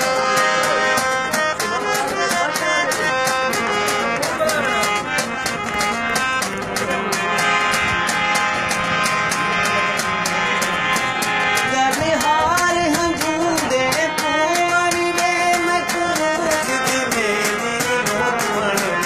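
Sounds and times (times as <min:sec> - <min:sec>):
harmonium melody: 0:00.0 - 0:19.0
quick percussive beat: 0:00.0 - 0:19.0.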